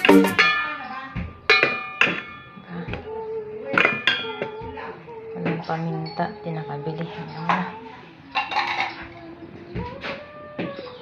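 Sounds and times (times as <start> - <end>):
metal utensil clattering on pot: 1.5 - 2.6, 3.7 - 4.5, 8.4 - 9.1.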